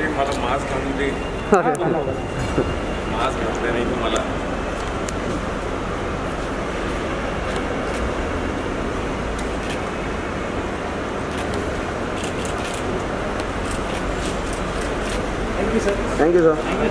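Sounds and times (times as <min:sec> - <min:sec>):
road traffic din: 0:00.0 - 0:16.9.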